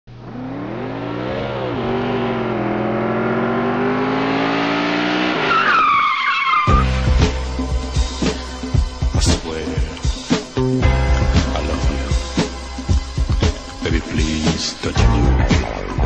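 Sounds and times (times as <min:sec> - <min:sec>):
engine-like drone: 0:00.1 - 0:05.4
high squealing glide: 0:05.3 - 0:06.9
funk beat with heavy bass: 0:06.7 - 0:16.0.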